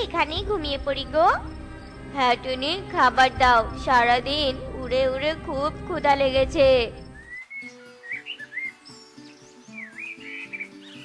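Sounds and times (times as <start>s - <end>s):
soft background music: 0.0s - 11.0s
bird chirps and whistles: 7.2s - 11.0s.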